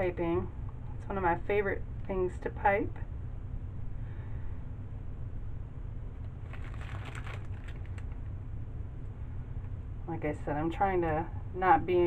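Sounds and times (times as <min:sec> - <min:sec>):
steady low hum: 0:00.0 - 0:12.0
plastic bag crinkling: 0:06.4 - 0:08.3.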